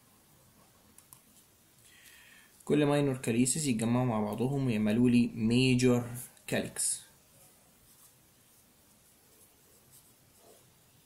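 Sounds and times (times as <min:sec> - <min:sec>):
marker pen scratching on paper: 0:07.4 - 0:11.0.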